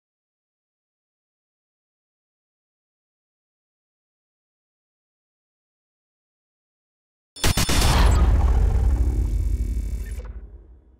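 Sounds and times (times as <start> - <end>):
deep low rumble: 8.1 - 10.9.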